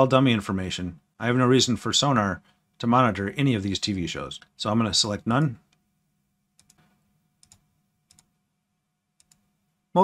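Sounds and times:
faint computer mouse clicks: 6.6s - 8.3s, 9.2s - 9.5s.

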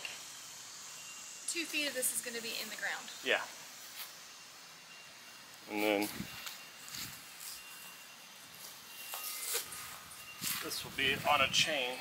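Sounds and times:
faint outdoor background noise: 0.0s - 12.0s
thin steady high tone: 0.0s - 12.0s.

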